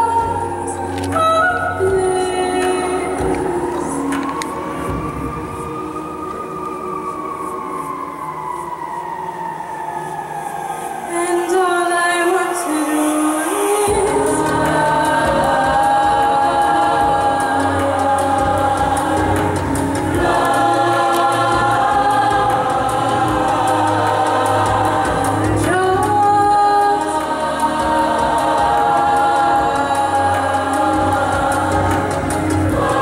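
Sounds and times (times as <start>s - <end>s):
youth choir singing in harmony: 0.0s - 33.0s.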